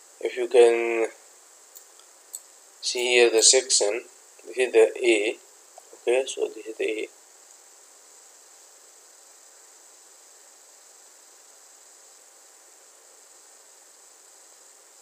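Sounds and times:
microphone hiss and whine: 0.0s - 15.0s.

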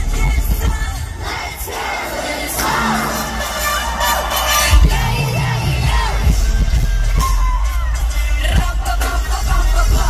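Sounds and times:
loud pop music with strong bass: 0.0s - 10.0s
crowd cheering and screaming: 0.9s - 8.9s.

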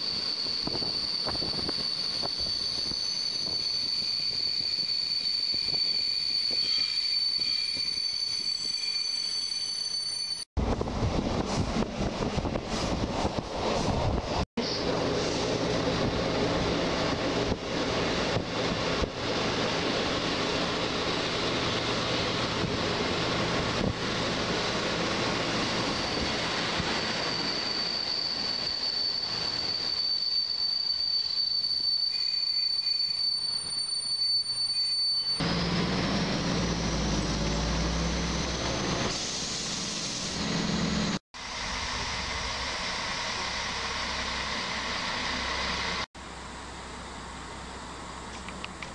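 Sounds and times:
wheels squealing on rails: 0.0s - 10.5s, 12.5s - 46.1s
train rolling noise: 0.0s - 48.9s
deep train rumble: 10.6s - 30.0s, 35.4s - 48.9s.

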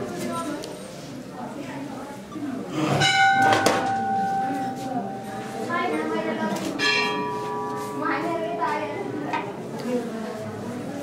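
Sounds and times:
metal temple bell ringing: 3.0s - 10.2s.

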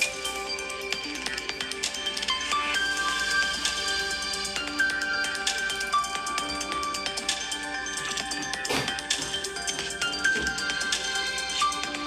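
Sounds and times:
music with held notes and beat: 0.0s - 12.0s.

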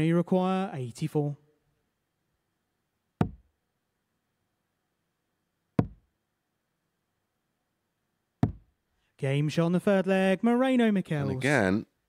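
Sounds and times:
darts striking dartboard: 3.2s - 3.5s, 5.8s - 6.1s, 8.4s - 8.7s.

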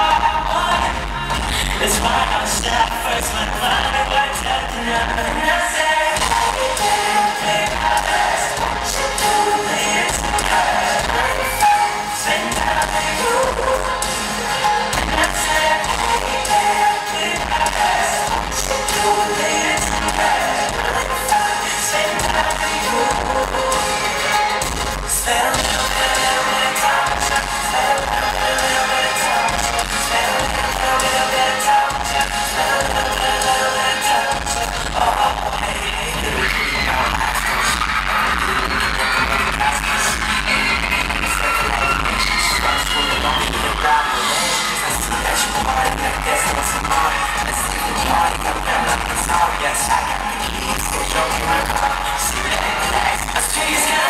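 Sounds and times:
drums: 0.0s - 54.0s
live pop band playing: 0.0s - 54.0s
man singing lead vocal: 0.0s - 54.0s.

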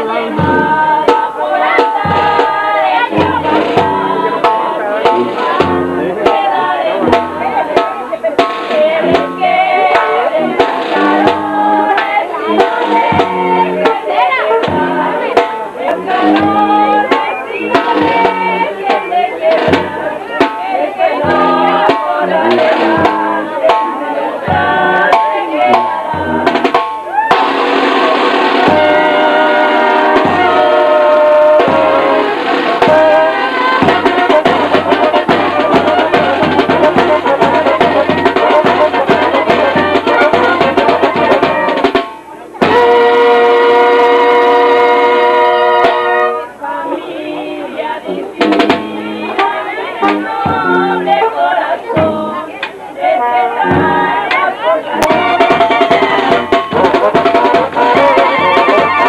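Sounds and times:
bass drum beating: 0.0s - 44.4s, 48.1s - 51.2s, 51.8s - 52.5s, 53.6s - 59.0s
snare drum playing: 0.0s - 59.0s
voices: 0.0s - 59.0s.

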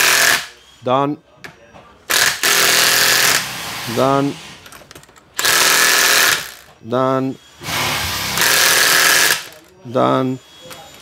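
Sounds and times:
impact wrench hammering a nut: 2.1s - 3.5s, 5.4s - 6.7s, 7.8s - 9.5s.

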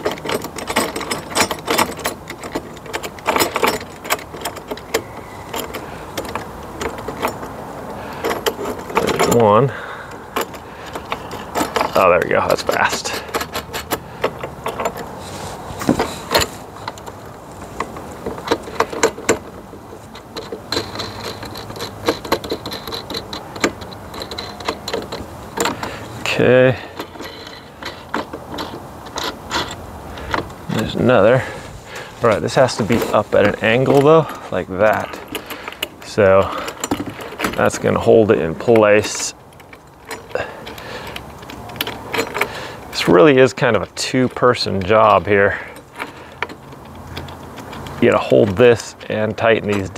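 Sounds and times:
metal bracket clicks and rattles: 0.0s - 49.9s.

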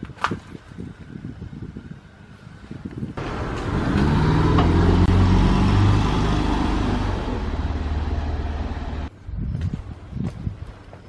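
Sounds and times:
car engine droning: 3.2s - 9.1s.

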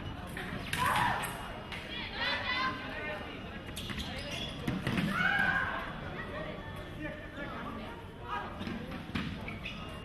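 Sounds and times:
voices echoing in a hall: 0.0s - 10.0s.

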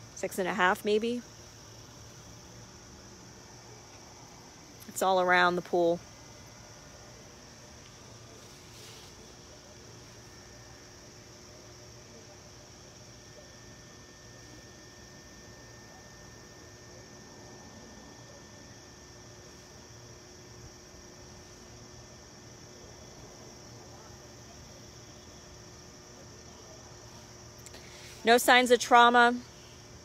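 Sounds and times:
faint hum: 0.0s - 30.0s.

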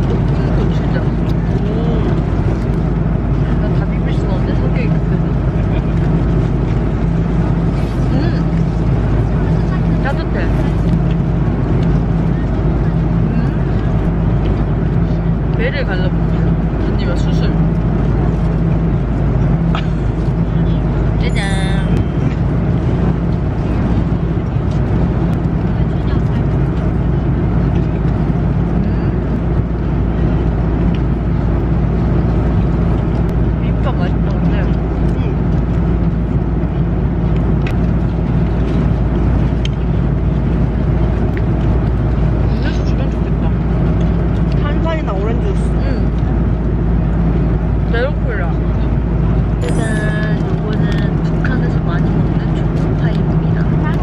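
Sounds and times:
faint voices: 0.0s - 31.4s, 32.6s - 54.0s
airliner cabin drone: 0.0s - 54.0s
low hum tones: 0.0s - 54.0s.

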